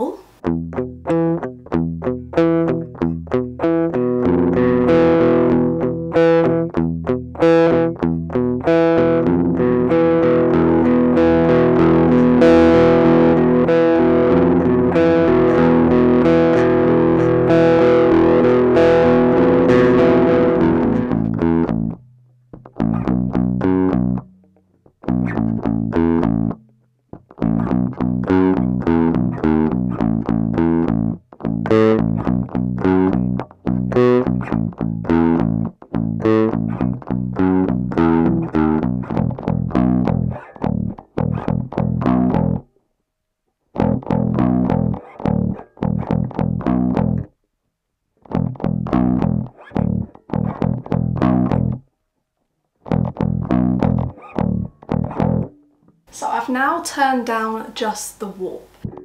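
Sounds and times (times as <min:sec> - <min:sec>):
distorted bass guitar: 0:00.0 - 0:42.7, 0:43.7 - 0:47.4, 0:48.2 - 0:51.9, 0:52.8 - 0:56.2, 0:58.8 - 0:59.0.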